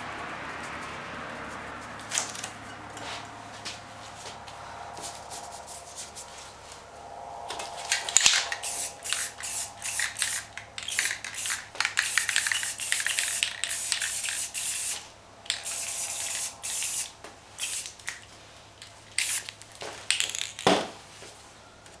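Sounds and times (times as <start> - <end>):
spray paint can hissing: 8.0 - 18.1, 19.1 - 19.5.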